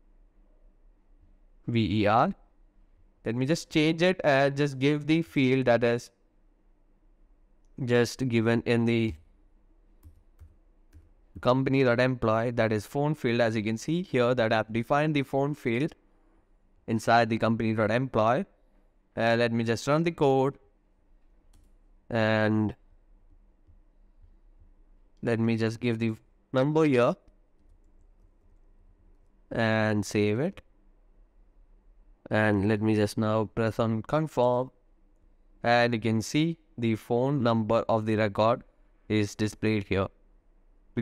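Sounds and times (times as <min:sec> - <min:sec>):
keyboard keys clicking: 0:10.0 - 0:11.1
faint keyboard typing: 0:10.0 - 0:11.5, 0:21.2 - 0:21.9, 0:23.6 - 0:25.2, 0:27.2 - 0:29.5.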